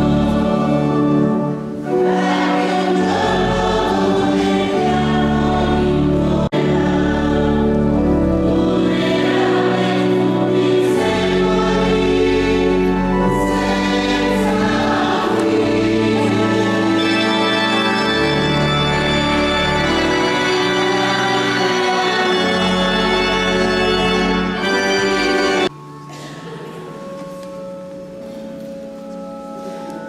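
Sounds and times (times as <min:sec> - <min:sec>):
choir singing a hymn: 0:00.0 - 0:25.7
organ chords: 0:00.0 - 0:29.8.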